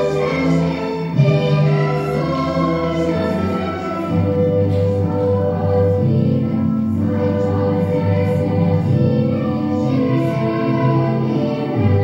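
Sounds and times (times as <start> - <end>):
choir singing held notes: 0.0 - 12.0.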